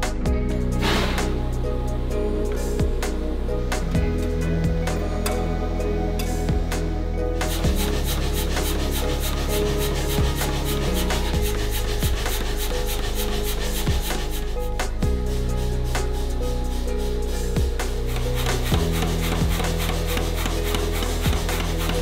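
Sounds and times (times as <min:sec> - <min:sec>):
background music with low notes: 0:00.0 - 0:22.0.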